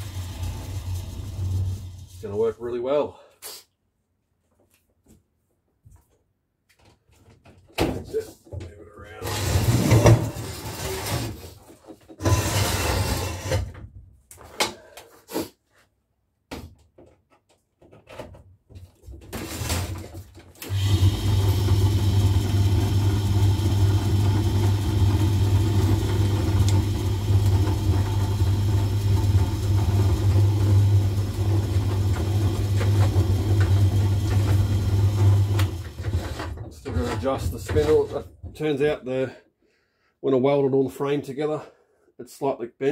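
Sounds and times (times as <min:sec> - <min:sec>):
electric motor humming: 0:20.7 - 0:35.9.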